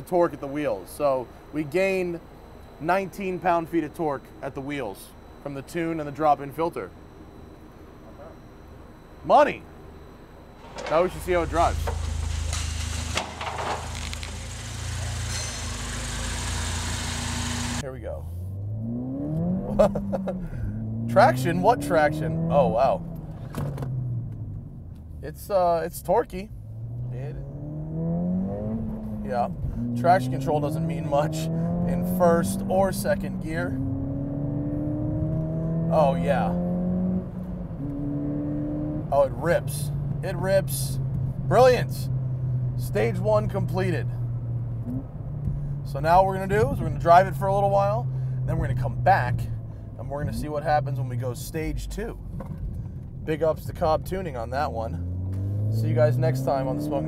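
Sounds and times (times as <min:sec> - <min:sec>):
car engine at low revs: 0:11.0 - 0:57.0.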